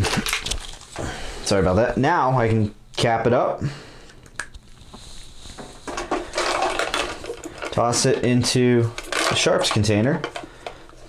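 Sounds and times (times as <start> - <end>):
plastic syringe rustling and clicking: 0.0 - 1.0, 4.1 - 11.0.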